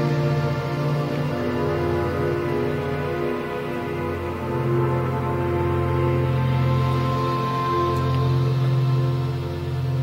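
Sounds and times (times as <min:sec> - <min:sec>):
synthesizer pad chord: 0:00.0 - 0:10.0.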